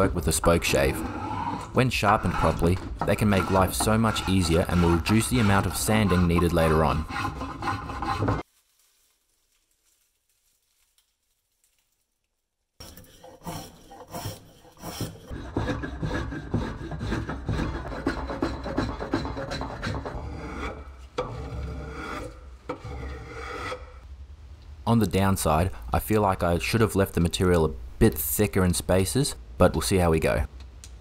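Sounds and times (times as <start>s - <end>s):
spokeshave scraping wood: 0.0s - 8.4s, 12.8s - 24.0s.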